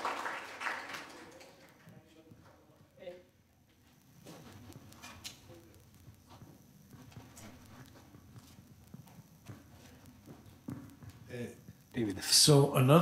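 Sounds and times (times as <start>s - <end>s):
scattered hand claps: 0.0s - 2.0s.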